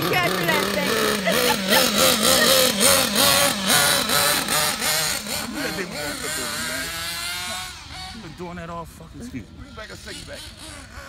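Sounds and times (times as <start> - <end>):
rc car engine revving: 0.0 - 11.0.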